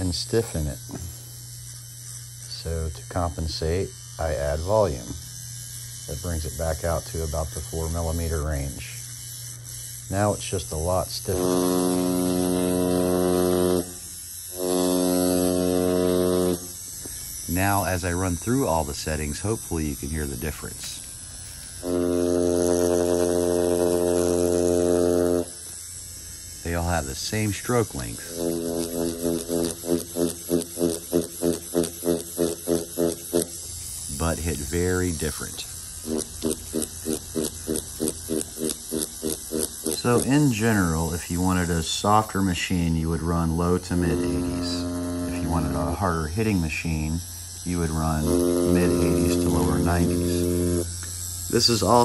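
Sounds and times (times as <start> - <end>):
steady low hum: 0.0 - 52.0
tattoo machine buzzing: 0.0 - 52.0.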